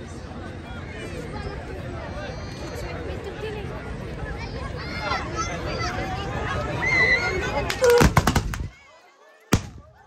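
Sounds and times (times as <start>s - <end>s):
musket shots: 7.8s - 8.7s, 9.6s - 9.9s.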